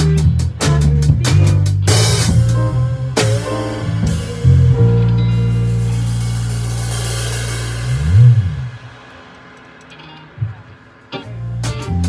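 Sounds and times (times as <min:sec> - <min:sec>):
low bass note sliding: 0:01.9 - 0:09.2
cymbal ringing: 0:03.4 - 0:12.0.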